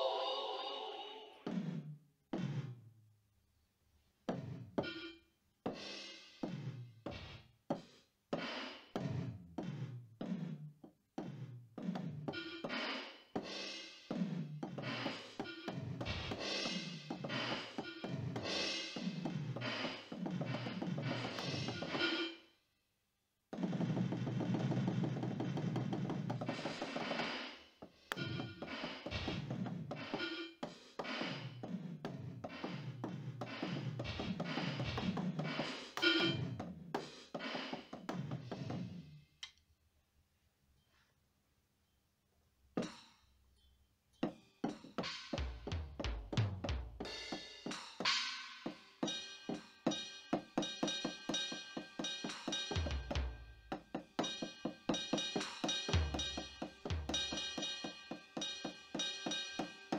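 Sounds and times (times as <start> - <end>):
electronic drum pad strikes: 44.7 - 59.9.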